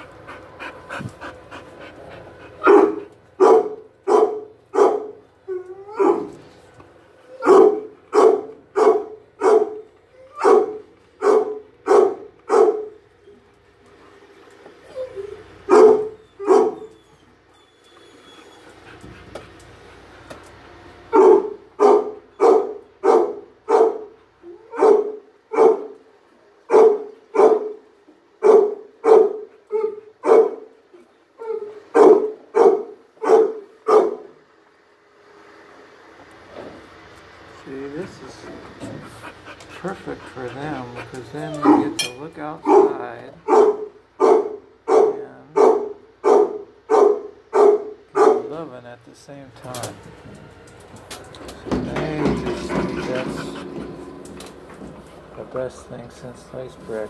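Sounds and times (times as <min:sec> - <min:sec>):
dog barking: 0:02.6 - 0:05.2, 0:06.0 - 0:06.3, 0:07.4 - 0:13.0, 0:15.7 - 0:16.9, 0:21.1 - 0:26.0, 0:26.7 - 0:27.8, 0:28.4 - 0:30.7, 0:31.9 - 0:34.3, 0:41.1 - 0:42.0, 0:42.6 - 0:48.5.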